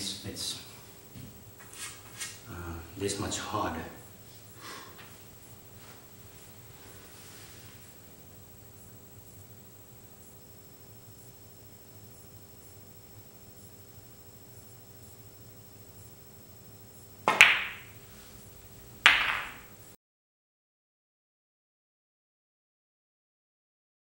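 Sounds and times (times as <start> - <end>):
snooker balls clicking: 17.2 - 18.0, 19.0 - 19.7
cue tip tap: 17.3 - 17.9, 19.0 - 19.7.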